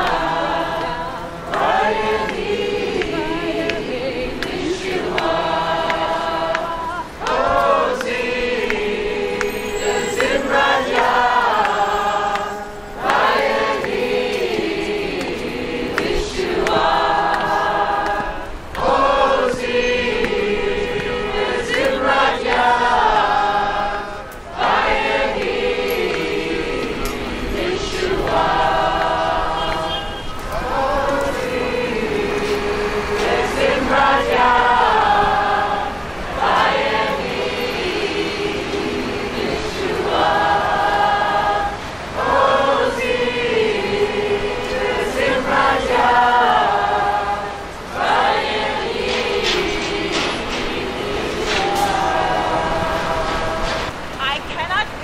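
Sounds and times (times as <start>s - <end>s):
crowd singing together: 0.0s - 55.0s.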